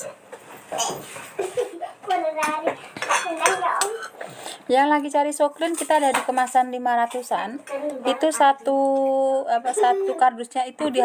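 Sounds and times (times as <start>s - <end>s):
dishes and cutlery clinking: 0.0s - 4.4s.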